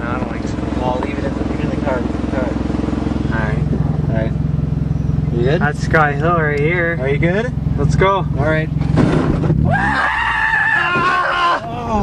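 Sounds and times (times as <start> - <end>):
voices: 0.0 - 8.8, 9.7 - 12.0
car engine running: 0.0 - 12.0.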